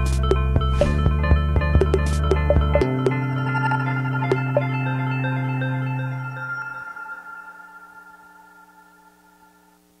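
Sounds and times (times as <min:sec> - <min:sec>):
sustained music chord: 0:00.7 - 0:09.8.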